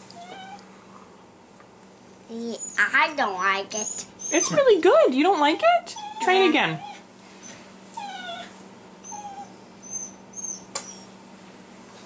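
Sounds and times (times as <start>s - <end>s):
faint high whimpering: 0.2s - 0.7s, 3.8s - 4.7s, 5.9s - 11.1s.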